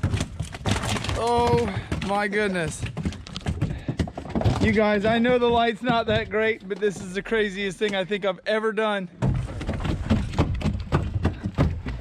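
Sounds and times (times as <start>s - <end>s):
fish thudding and splashing: 0.0s - 6.8s.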